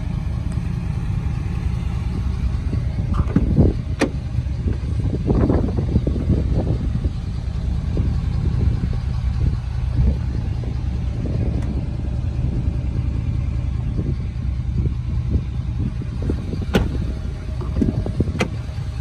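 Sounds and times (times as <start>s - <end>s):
diesel engine idling: 0.0s - 19.0s.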